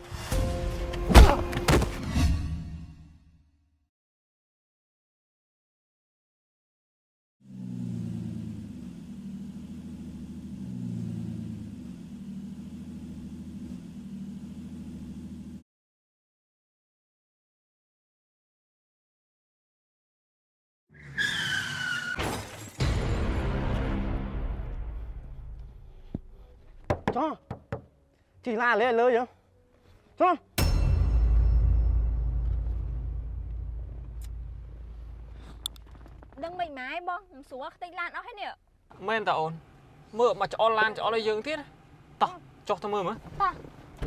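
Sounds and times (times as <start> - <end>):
sharp knocks: 26.8 - 27.9
car engine idling: 31.2 - 36.4.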